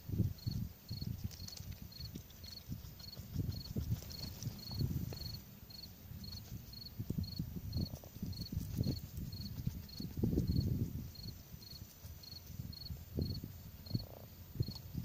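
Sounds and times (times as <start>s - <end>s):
insect chirping: 0.0s - 15.0s
rustling near microphone: 1.0s - 15.0s.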